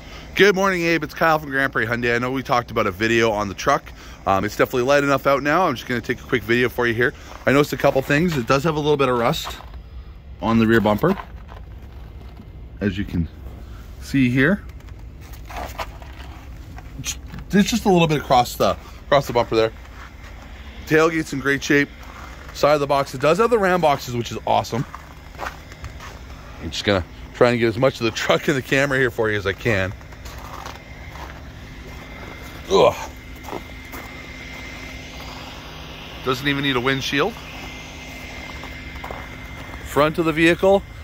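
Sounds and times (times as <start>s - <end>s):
low background hum: 0.0s - 41.0s
low steady rumble: 0.0s - 41.0s
footsteps crunching on snow: 4.4s - 41.0s.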